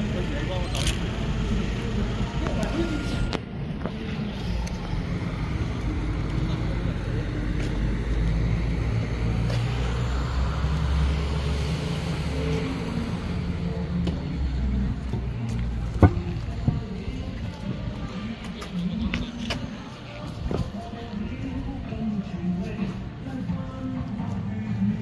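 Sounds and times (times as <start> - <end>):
bus diesel engine humming: 0.0 - 25.0.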